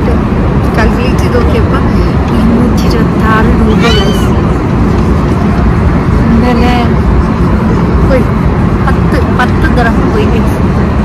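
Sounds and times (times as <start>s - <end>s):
jet cabin rumble: 0.0s - 11.0s.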